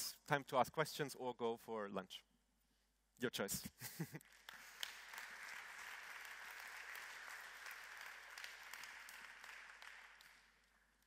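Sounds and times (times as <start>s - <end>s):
audience applauding: 4.2s - 11.0s.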